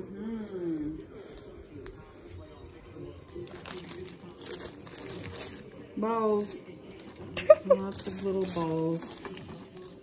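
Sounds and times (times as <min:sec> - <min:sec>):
plastic bag crinkling: 0:02.8 - 0:10.0.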